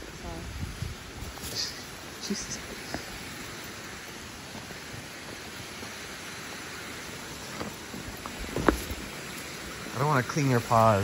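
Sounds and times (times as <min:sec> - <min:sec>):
flowing water rushing: 0:00.0 - 0:11.0.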